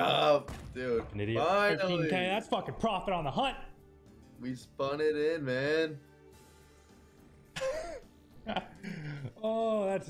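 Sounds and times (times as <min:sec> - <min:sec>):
man laughing: 0:07.6 - 0:09.5.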